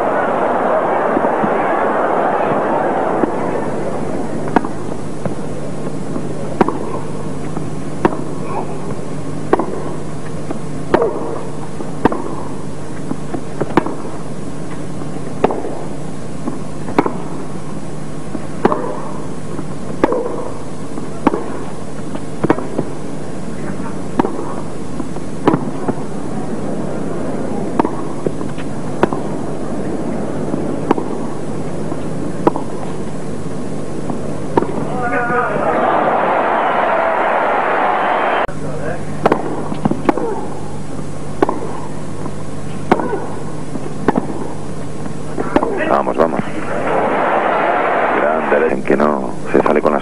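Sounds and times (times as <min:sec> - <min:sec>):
crowd noise: 0:00.0 - 0:10.1, 0:25.6 - 0:41.1, 0:45.2 - 0:50.0
low broadcast hum: 0:00.0 - 0:50.0
tennis ball bouncing: 0:02.5 - 0:17.5, 0:18.3 - 0:23.0, 0:24.1 - 0:26.1, 0:27.6 - 0:33.1, 0:34.0 - 0:35.4, 0:39.2 - 0:40.6, 0:41.4 - 0:44.8, 0:45.4 - 0:45.8
tennis racket hitting ball: 0:03.2 - 0:03.6, 0:04.4 - 0:05.4, 0:06.1 - 0:07.1, 0:08.0 - 0:08.4, 0:09.5 - 0:14.2, 0:15.4 - 0:17.4, 0:18.3 - 0:21.8, 0:22.4 - 0:22.9, 0:24.1 - 0:26.0, 0:27.7 - 0:29.4, 0:30.4 - 0:33.0, 0:34.0 - 0:35.4, 0:39.2 - 0:40.6, 0:41.4 - 0:41.9, 0:42.8 - 0:44.6, 0:45.4 - 0:45.8.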